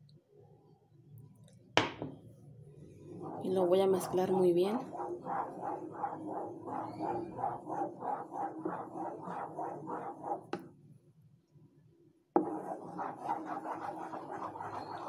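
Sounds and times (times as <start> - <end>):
spatula stirring in metal pot: 2.8 - 10.7, 12.4 - 15.0.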